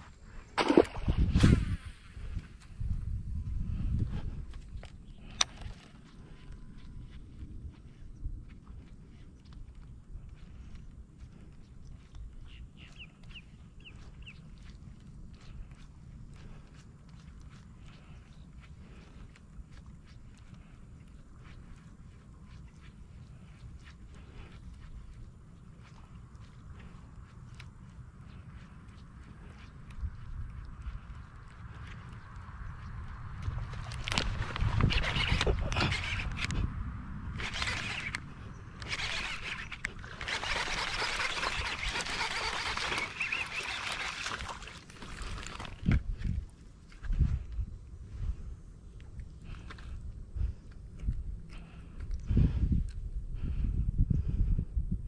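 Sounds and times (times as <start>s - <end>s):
fish splashing and thrashing: 0.0s - 2.4s, 33.1s - 36.6s, 37.3s - 46.5s.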